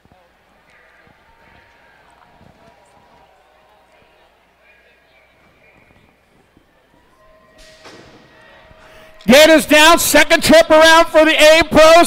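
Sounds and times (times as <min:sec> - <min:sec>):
faint indoor arena ambience: 0:00.0 - 0:12.0
start gate dropping: 0:07.5 - 0:09.6.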